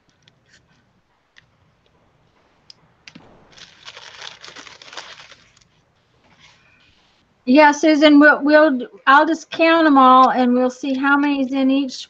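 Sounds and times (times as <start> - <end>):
paper rustling and crinkling: 3.6 - 7.1.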